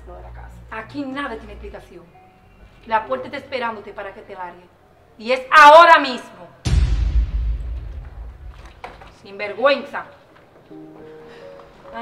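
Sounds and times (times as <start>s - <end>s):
deep cinematic boom: 6.6s - 9.0s.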